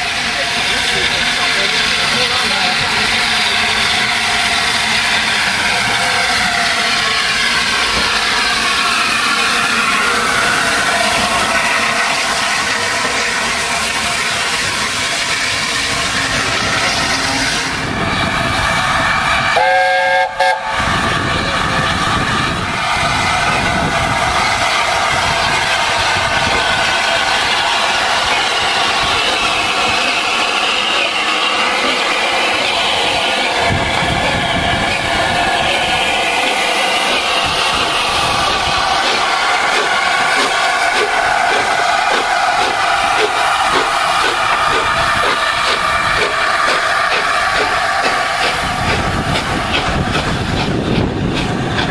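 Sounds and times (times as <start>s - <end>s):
steam locomotive exhaust: 0.0s - 51.9s
multi-note steam whistle: 18.7s - 21.0s
wheels on rails: 21.3s - 51.9s.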